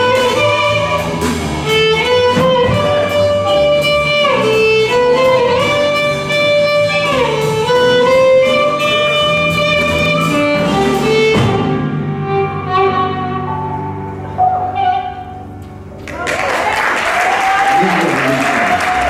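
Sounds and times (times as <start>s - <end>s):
drums and cymbal: 0.0s - 11.9s
violin sliding long notes: 0.0s - 15.5s
upright bass: 0.0s - 16.0s
piano: 0.0s - 19.0s.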